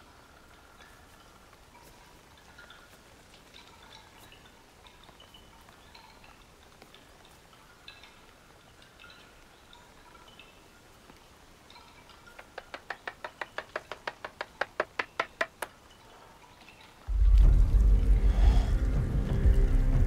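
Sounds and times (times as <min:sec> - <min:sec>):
faint tinkling notes: 0:00.0 - 0:12.4
rapid sharp taps: 0:12.3 - 0:15.8.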